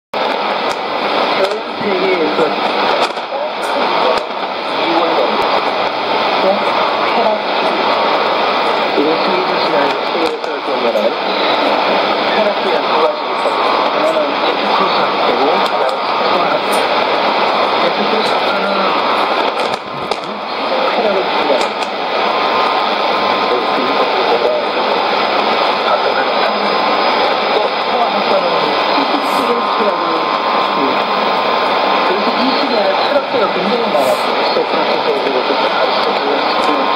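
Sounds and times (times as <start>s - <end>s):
radio static and hiss: 0.1s - 36.9s
person talking over shortwave radio: 0.2s - 36.9s.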